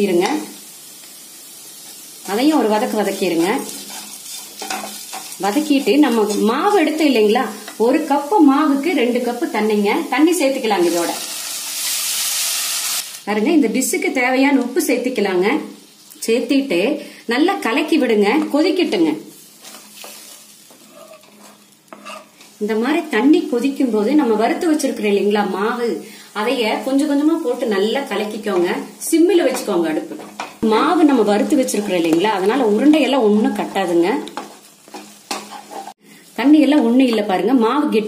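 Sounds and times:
food sizzling in oil: 0.0s - 38.0s
spatula scraping a pan: 3.3s - 7.8s, 19.4s - 22.6s, 31.3s - 33.0s, 33.6s - 36.0s
squealing spatula on pan: 19.6s - 22.5s, 34.4s - 36.0s.

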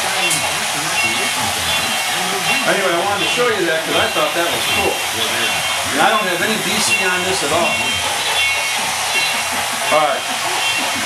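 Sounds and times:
steam locomotive chugging effect: 0.0s - 11.0s.

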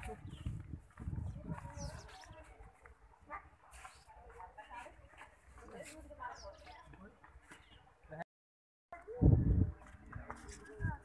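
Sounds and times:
faint chatter of people: 0.0s - 8.2s.

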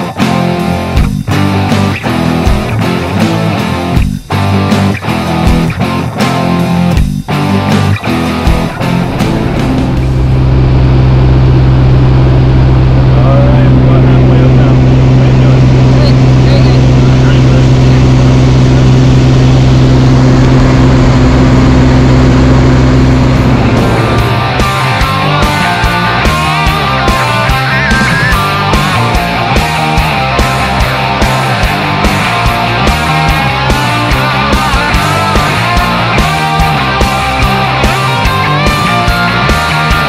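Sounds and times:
propeller engine drone in cabin: 0.0s - 40.0s
rock music with guitar: 0.0s - 40.0s
faint voices: 13.1s - 18.5s.

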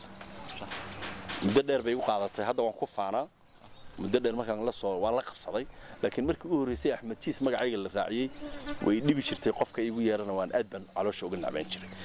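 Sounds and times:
man talking: 1.4s - 3.3s, 4.0s - 12.0s.

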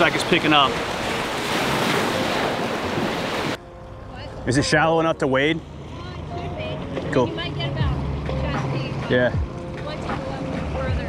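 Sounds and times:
surf breaking on beach: 0.0s - 3.6s.

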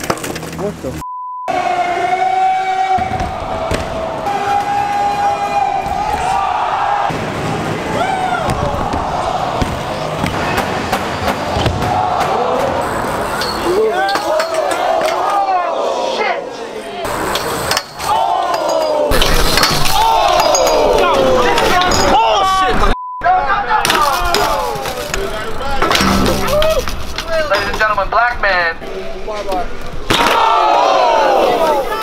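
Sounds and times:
bikes clattering on pavement: 0.0s - 0.9s, 17.1s - 22.2s, 23.8s - 28.0s
crowd hubbub: 1.5s - 28.0s.

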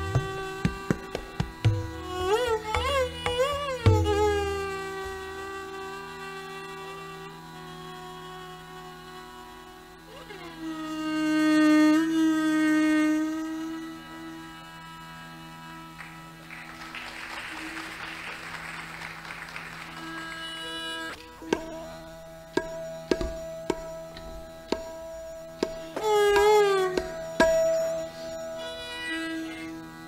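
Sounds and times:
sharp tabla strokes: 0.0s - 6.4s, 20.0s - 29.8s
bowed violin melody: 0.0s - 30.0s.

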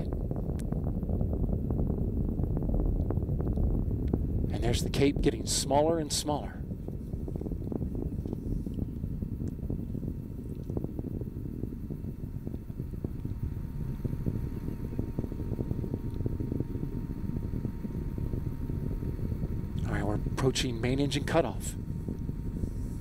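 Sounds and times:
faint steady tone: 0.0s - 23.0s
rocket engines rumbling: 0.0s - 23.0s.

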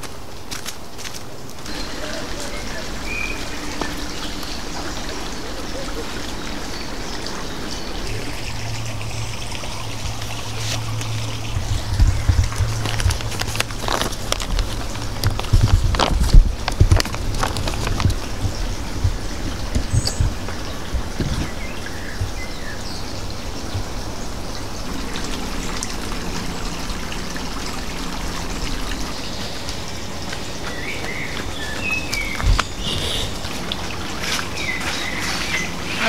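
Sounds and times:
creek water rushing: 0.0s - 36.0s
bird chirps: 1.7s - 12.8s, 30.4s - 33.4s
low thumps: 7.9s - 22.5s.

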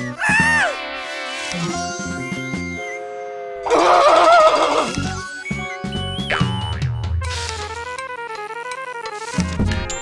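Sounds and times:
cartoon underscore music: 0.0s - 10.0s
wavering cartoon sound effect: 3.6s - 5.1s.

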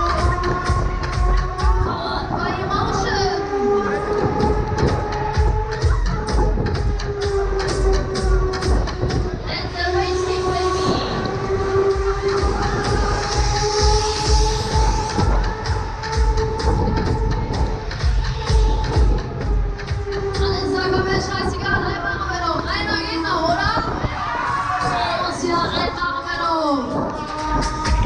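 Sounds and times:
loud fairground ride music: 0.0s - 28.0s.

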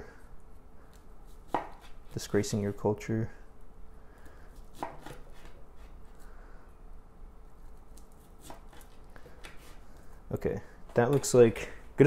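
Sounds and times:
knife cutting on bamboo board: 1.3s - 2.1s, 4.6s - 6.1s, 8.4s - 9.8s.

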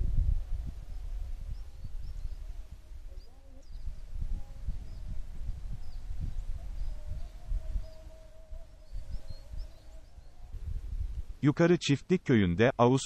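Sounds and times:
faint wavering hum: 0.0s - 11.4s
wind rumble on microphone: 0.0s - 11.5s
faint bird chirps: 0.8s - 11.2s.

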